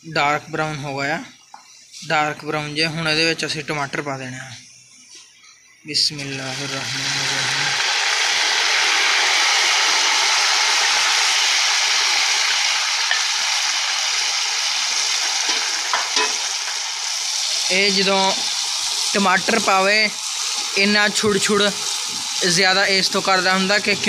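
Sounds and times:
tomatoes sizzling in hot oil: 5.0 - 24.0.

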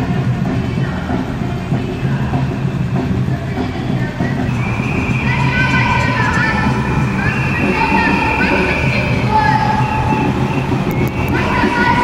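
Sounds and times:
marching crowd: 0.0 - 12.0
scattered higher tones: 4.5 - 12.0.

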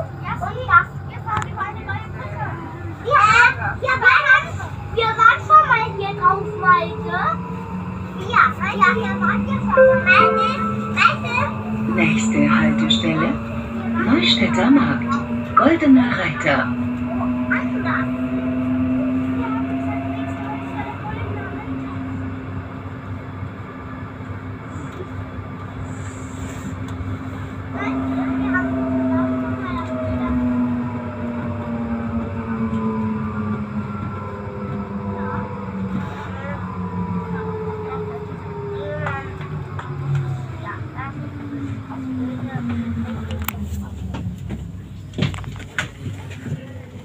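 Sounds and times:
wheels rumbling on rails: 0.0 - 47.0.

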